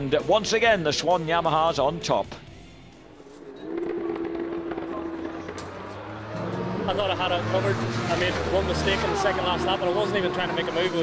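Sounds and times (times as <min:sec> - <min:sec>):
racing motorcycle engine: 0:03.0 - 0:11.0.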